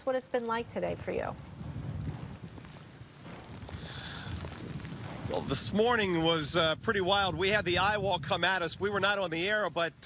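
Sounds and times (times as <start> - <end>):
wind and rain hiss: 0.0 - 10.0
wind buffeting microphone: 0.0 - 10.0.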